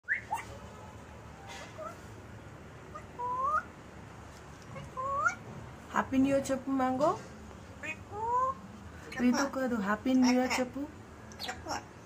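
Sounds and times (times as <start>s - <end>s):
parrot rising calls: 2.9s - 3.7s.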